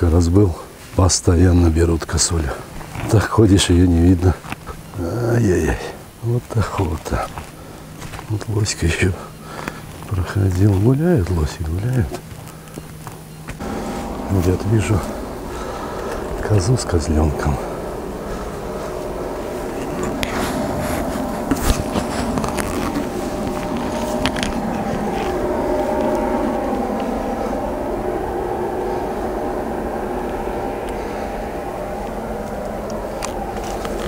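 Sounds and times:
vehicle engine idling: 0:01.3 - 0:34.0.

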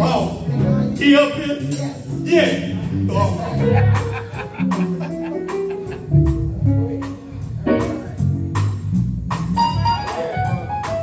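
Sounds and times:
bass notes: 0:00.0 - 0:11.0
drum kit steady beat: 0:00.0 - 0:11.0
guitar lines: 0:02.9 - 0:08.6.

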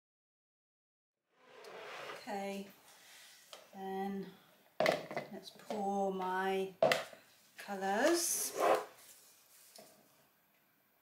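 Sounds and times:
plastic jug knocking on wood: 0:04.8 - 0:05.3.

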